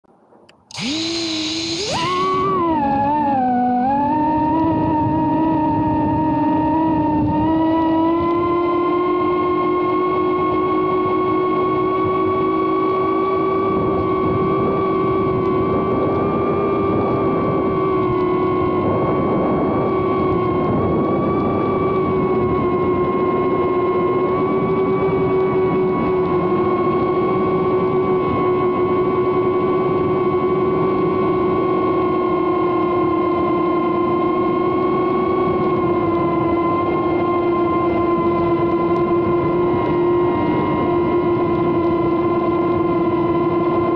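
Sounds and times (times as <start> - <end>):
drone motors whining: 0.5 - 9.2.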